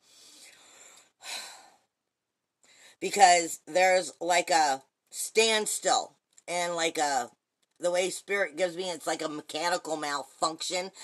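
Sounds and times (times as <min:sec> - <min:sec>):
woman breathing: 0:00.0 - 0:01.9, 0:02.6 - 0:03.0
woman speaking: 0:03.0 - 0:11.0.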